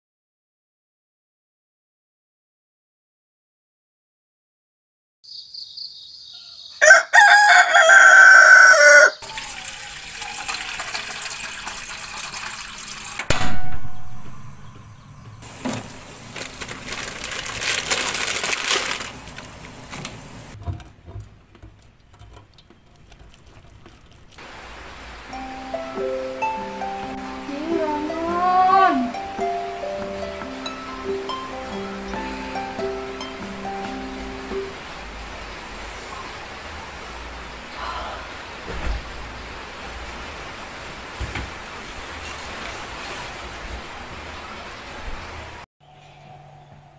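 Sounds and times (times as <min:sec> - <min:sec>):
rooster crowing: 0:06.3 - 0:11.1
water boiling in a pot: 0:09.2 - 0:13.3, 0:15.4 - 0:25.6
faint high chirps: 0:13.8 - 0:15.5.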